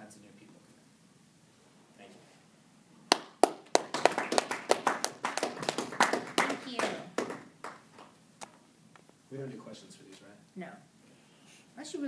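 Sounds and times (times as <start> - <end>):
audience applauding: 3.1 - 8.1.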